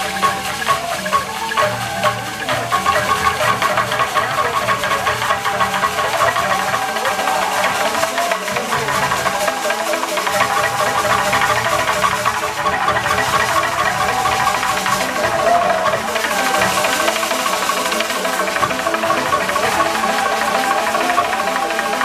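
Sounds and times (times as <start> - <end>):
drums: 0.0 - 22.0
wooden xylophone playing: 0.0 - 22.0.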